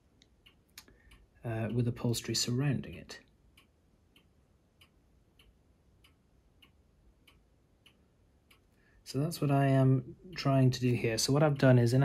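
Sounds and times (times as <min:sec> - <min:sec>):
faint ticking: 0:00.0 - 0:12.0.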